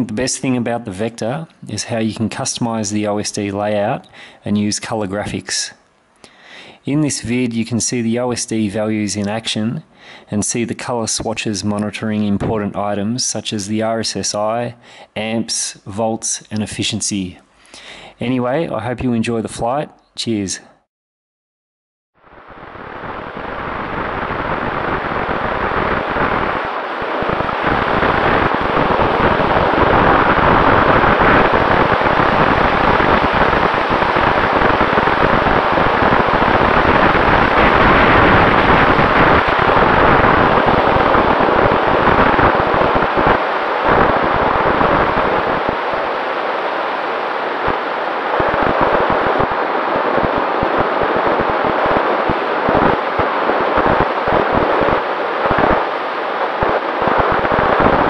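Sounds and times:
wind rushing over microphone: 22.3s - 58.0s.

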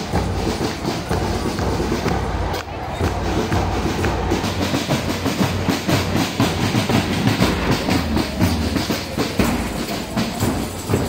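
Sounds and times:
bass drums: 0.0s - 11.0s
tambourines shaken: 3.4s - 11.0s.

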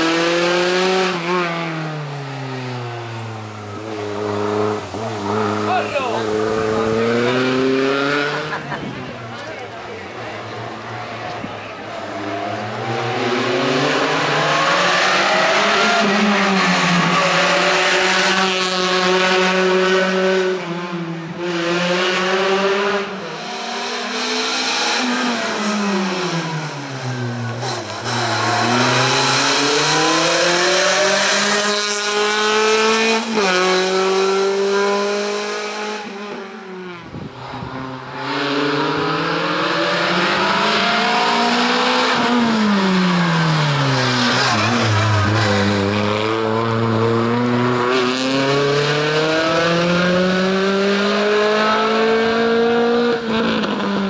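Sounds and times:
car engine revving hard: 0.0s - 8.9s, 10.4s - 54.0s.

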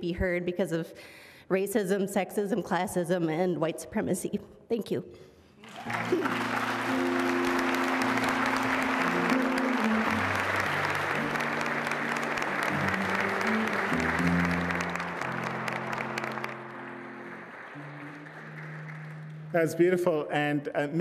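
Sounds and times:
audience applauding: 5.6s - 20.2s.

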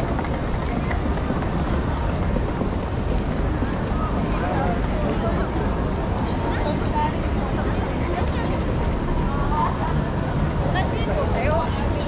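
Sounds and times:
faint voices: 0.0s - 12.0s
road traffic hum: 0.0s - 12.0s.

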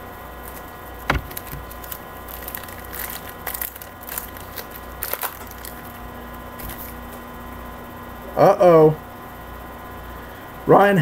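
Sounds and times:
card packaging clicks and crinkles: 0.4s - 6.0s, 6.6s - 7.2s.

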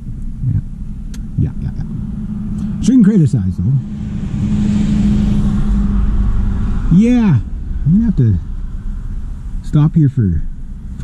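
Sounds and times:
car engine running: 0.0s - 11.0s
road rumble: 0.0s - 11.0s.

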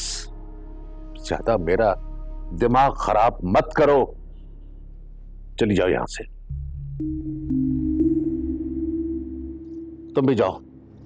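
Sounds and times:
synthesizer drone: 6.5s - 11.0s.

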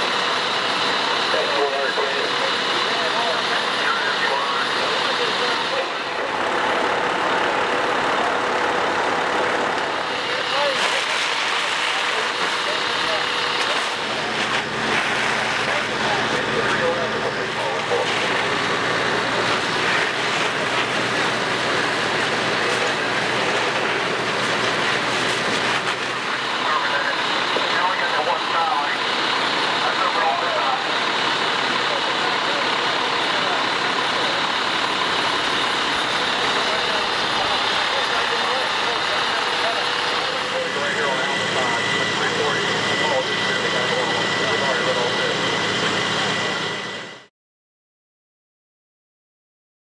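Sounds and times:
hose streams rushing: 0.0s - 46.6s
indistinct voices: 0.0s - 47.0s
fire engine pumps running: 0.0s - 47.3s.

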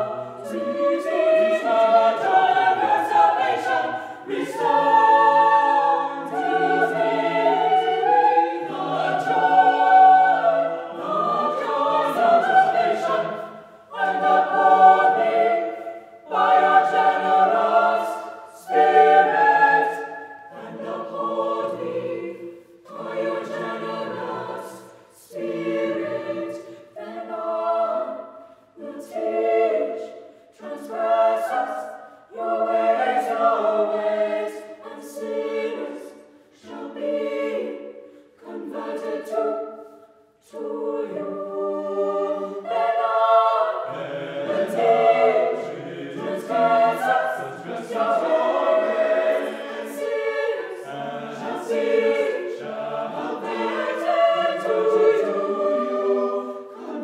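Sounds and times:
choir singing a cappella: 0.0s - 57.0s.

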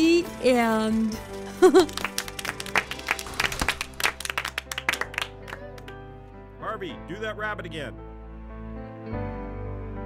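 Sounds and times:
soft background music: 0.0s - 10.0s
people clapping: 1.0s - 6.2s.

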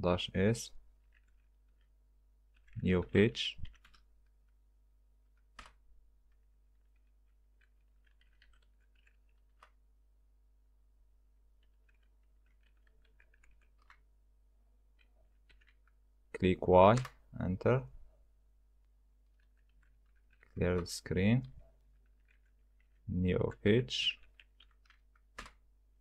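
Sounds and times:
computer keyboard typing: 5.3s - 9.8s, 11.6s - 14.1s, 14.9s - 16.0s, 19.3s - 23.1s, 24.1s - 25.6s
keyboard key clicks: 24.4s - 25.6s.

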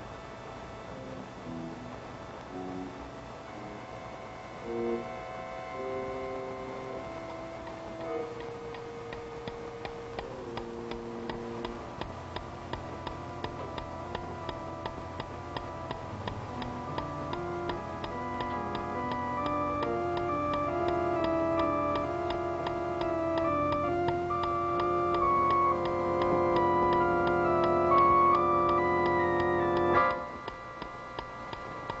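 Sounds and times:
organ-like suspense music: 0.0s - 32.0s
clock ticking loudly: 5.8s - 32.0s.

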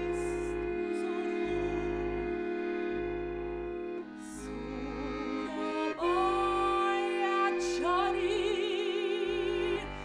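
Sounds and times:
accordion sustained chords: 0.0s - 10.0s.

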